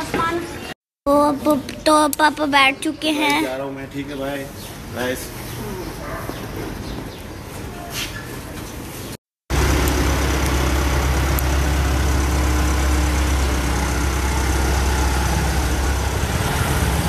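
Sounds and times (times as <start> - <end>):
car engine idling: 9.5 - 17.0.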